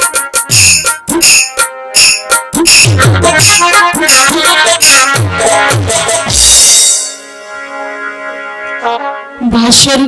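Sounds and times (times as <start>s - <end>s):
drum strokes dropping in pitch: 0.0s - 7.2s.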